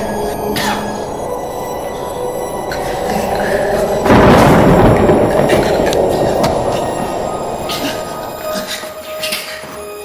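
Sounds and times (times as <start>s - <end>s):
thin high ringing tones: 0.0s - 10.0s
energy blast roar: 0.9s - 8.6s
sharp crackles: 1.3s - 9.6s.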